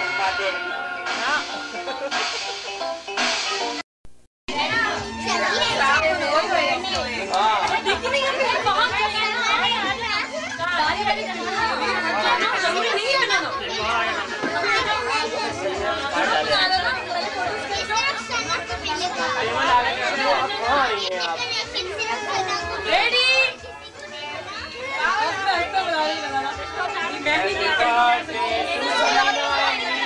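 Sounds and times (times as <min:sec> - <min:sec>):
adults and children talking: 0:00.0 - 0:03.8, 0:04.5 - 0:30.0.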